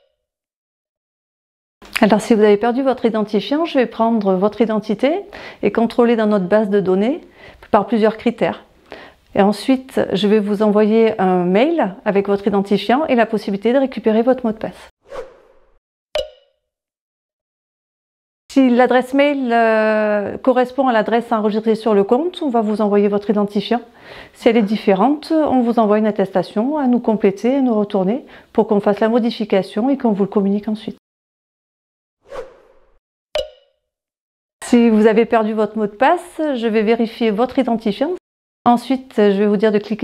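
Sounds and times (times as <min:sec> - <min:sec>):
whoosh: 0:15.0 - 0:15.8, 0:32.2 - 0:33.0
sharp pop with ringing tone: 0:16.2 - 0:16.6, 0:33.4 - 0:33.8.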